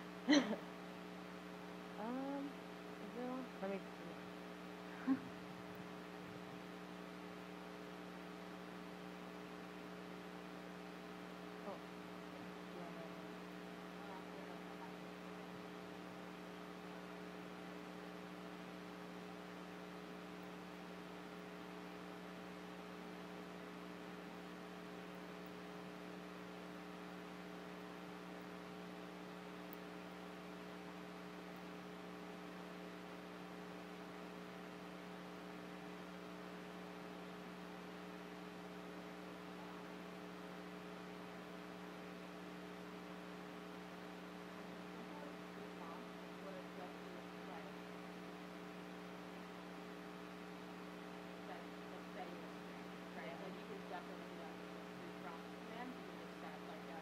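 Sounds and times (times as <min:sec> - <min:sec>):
electrical mains hum: 0:00.0 - 0:57.0.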